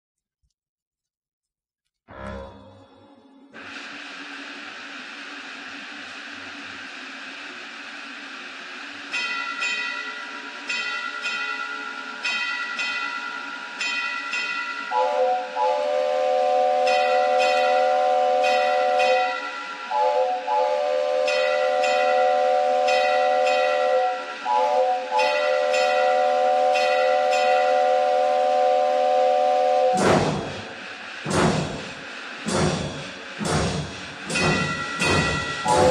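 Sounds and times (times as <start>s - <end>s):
steam locomotive hiss: 3.6s - 35.9s
locomotive bell ringing: 9.1s - 15.6s, 16.8s - 19.9s, 21.2s - 24.4s, 25.1s - 28.0s, 34.3s - 35.9s
chime whistle blasts: 34.4s - 35.9s.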